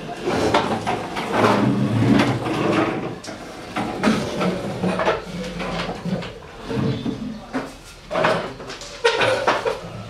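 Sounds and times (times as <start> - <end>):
people chattering: 0.0 - 1.4, 6.4 - 8.7
wooden tables and chairs clattering: 0.0 - 10.0.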